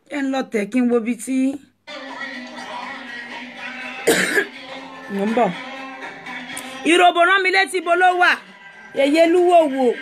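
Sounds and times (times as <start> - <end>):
woman coughing: 4.0 - 4.6.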